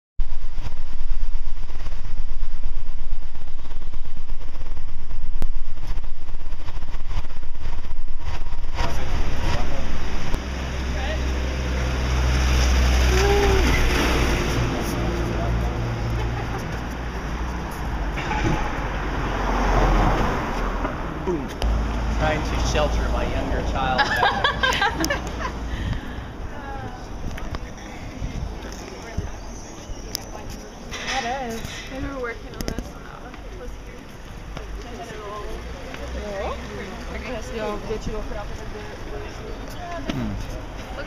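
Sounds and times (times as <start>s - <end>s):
street traffic: 0.2s - 41.0s
people's voices: 13.0s - 19.8s, 21.2s - 41.0s.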